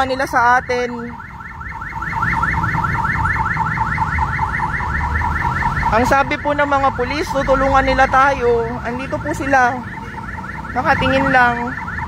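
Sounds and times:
electronic alarm siren chirps: 0.0s - 12.0s
low traffic rumble: 0.0s - 12.0s.

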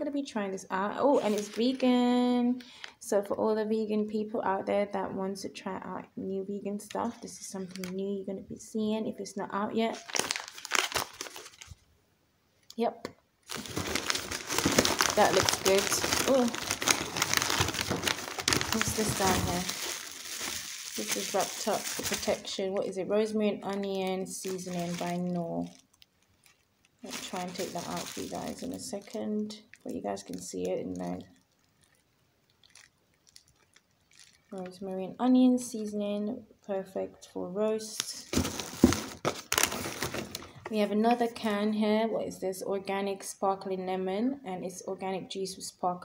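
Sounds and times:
plastic pouch crinkling: 1.1s - 2.1s, 7.0s - 8.1s, 9.9s - 11.9s, 13.5s - 22.9s, 23.6s - 34.8s, 38.1s - 40.6s.

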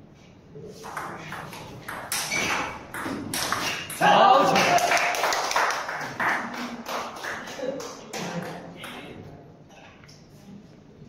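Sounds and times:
table-tennis ball bouncing: 0.8s - 4.2s.

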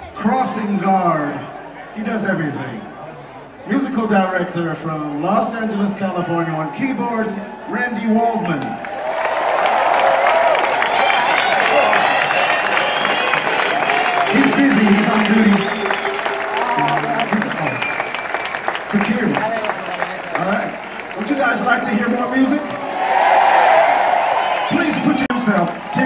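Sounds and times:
audience applauding and cheering: 7.4s - 26.0s
band playing: 11.0s - 22.7s.

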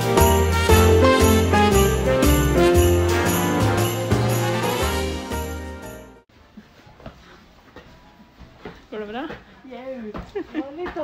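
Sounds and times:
background music: 0.0s - 6.3s.

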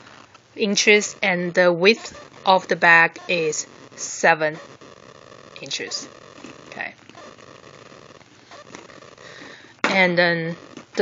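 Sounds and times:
handbag rustling: 0.0s - 0.3s
background hiss: 0.0s - 11.0s.

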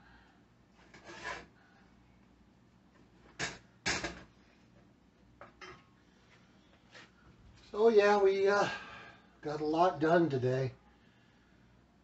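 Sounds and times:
utensil scraping a saucepan: 0.9s - 1.5s.

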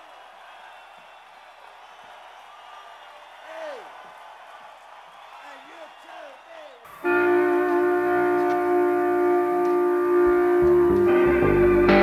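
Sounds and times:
sustained amplified instrument note: 7.0s - 12.0s.

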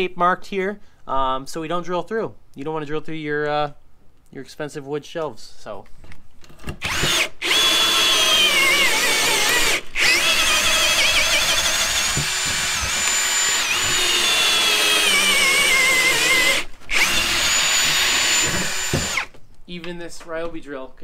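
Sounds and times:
cordless drill boring into wood: 6.7s - 19.4s.

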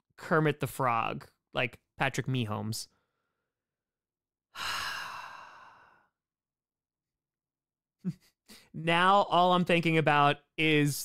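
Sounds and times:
man sighing: 4.6s - 6.0s.

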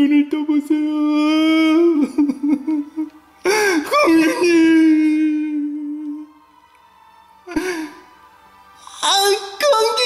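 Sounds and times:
person sobbing and wailing: 1.0s - 6.3s, 7.4s - 8.2s.

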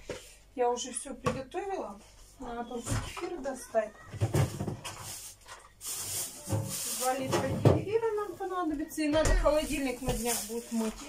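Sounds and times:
plastic bag rustling: 3.5s - 11.0s.

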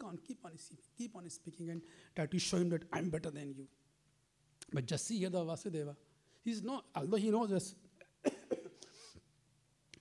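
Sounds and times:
man coughing: 8.2s - 9.0s.

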